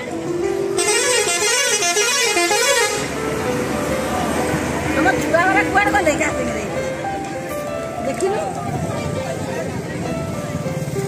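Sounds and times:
background music: 0:00.0 - 0:11.0
warbling horn: 0:00.8 - 0:03.1.

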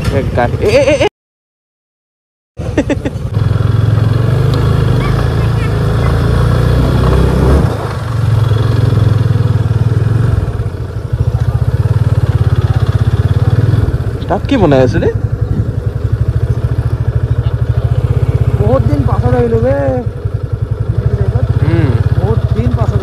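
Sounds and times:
motorcycle engine running: 0:02.6 - 0:23.0.

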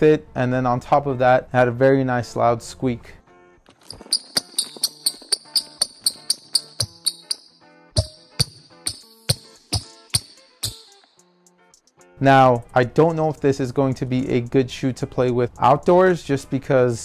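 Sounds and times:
background music: 0:02.6 - 0:17.0
shoes squeaking on wooden floor: 0:03.7 - 0:11.1.

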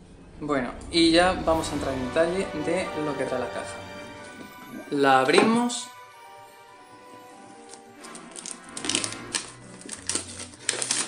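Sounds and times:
soft background music: 0:00.0 - 0:11.0
plastic shrink-wrap crinkling: 0:07.2 - 0:11.0.

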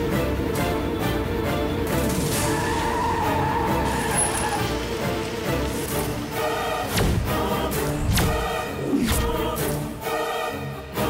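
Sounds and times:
dramatic background music: 0:00.0 - 0:11.0
car tyres screeching: 0:02.3 - 0:06.2.

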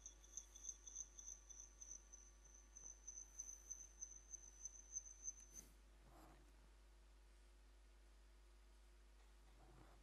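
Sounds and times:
faint high-pitched electronic whine: 0:00.0 - 0:10.0.

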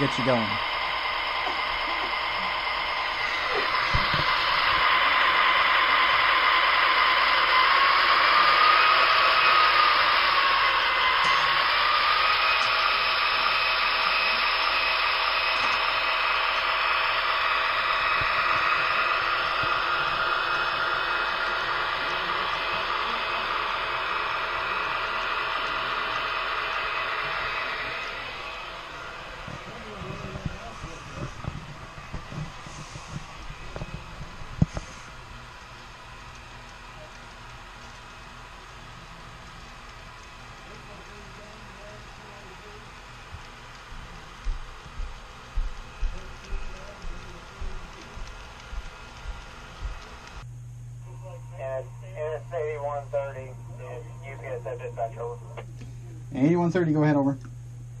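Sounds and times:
model train rushing past: 0:00.0 - 0:34.1.

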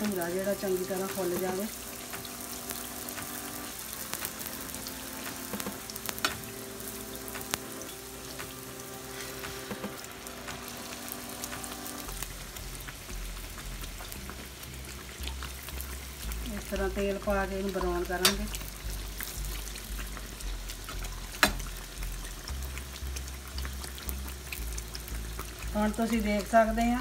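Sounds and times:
dough sizzling in hot oil: 0:00.0 - 0:27.0
sharp popping oil: 0:11.4 - 0:26.8.

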